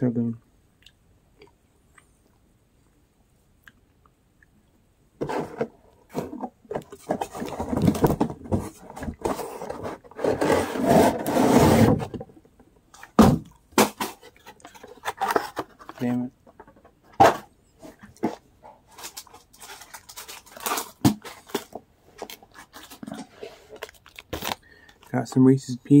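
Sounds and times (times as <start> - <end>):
packaging rustling and crinkling: 13.0 - 16.7, 18.0 - 25.4.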